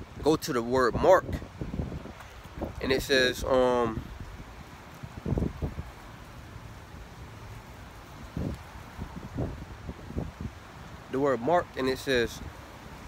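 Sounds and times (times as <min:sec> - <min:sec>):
wind blowing across microphone: 0:00.0 - 0:13.0.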